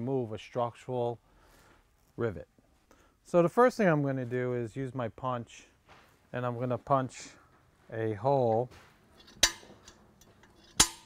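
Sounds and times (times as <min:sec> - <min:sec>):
center punch striking metal: 0:09.3 - 0:09.9, 0:10.7 - 0:11.0.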